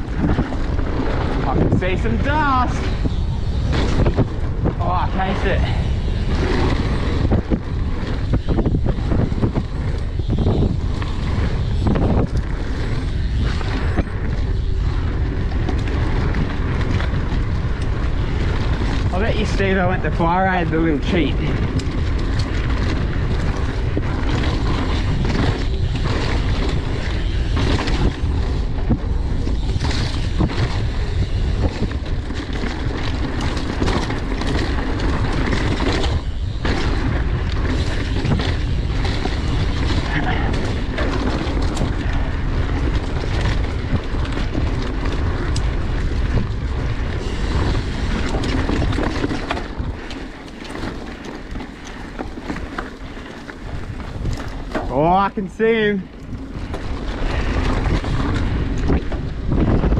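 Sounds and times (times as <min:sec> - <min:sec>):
bike rattling over bumps: 0:00.0 - 0:59.9
tyres on dirt trail: 0:00.0 - 0:59.9
wind buffeting microphone: 0:00.0 - 0:59.9.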